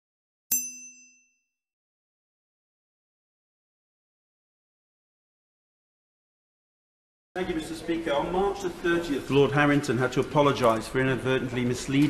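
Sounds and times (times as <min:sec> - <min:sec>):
bright metallic ding: 0:00.5 - 0:01.4.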